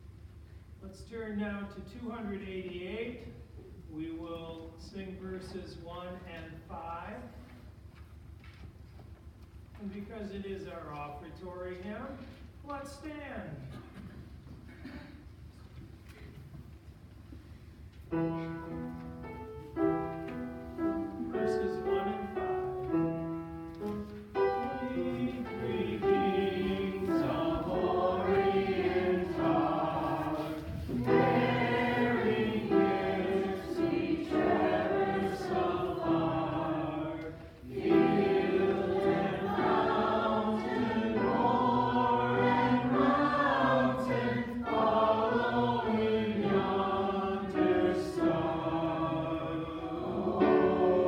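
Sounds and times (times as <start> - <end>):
congregation singing a hymn: 18.2 - 51.0.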